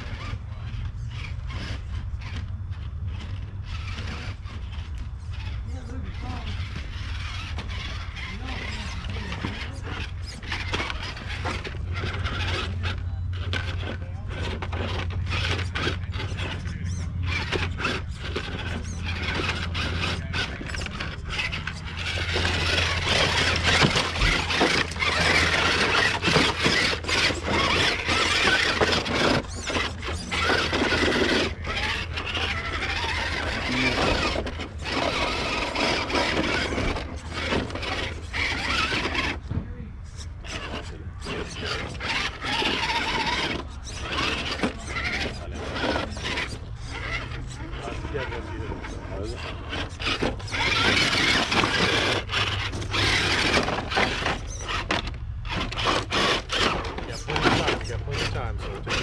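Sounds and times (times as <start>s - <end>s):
scraping over rocks: 0.0s - 39.5s, 40.2s - 59.0s
electric motor whining: 0.0s - 59.0s.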